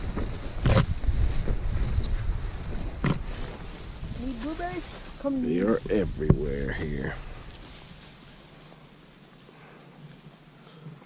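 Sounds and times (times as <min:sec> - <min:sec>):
wind rumbling on microphone: 0:00.0 - 0:08.4
leaves and branches brushing: 0:00.0 - 0:11.0.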